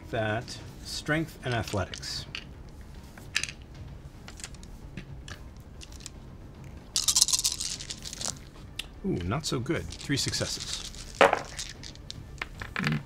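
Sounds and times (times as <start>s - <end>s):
dice clattering: 1.5s - 2.5s, 3.2s - 3.6s, 4.3s - 4.7s, 5.8s - 6.1s, 7.0s - 8.5s, 9.8s - 13.0s
dice clicking: 1.5s - 2.5s, 3.2s - 3.6s, 4.3s - 6.1s, 7.0s - 8.5s, 9.9s - 13.0s.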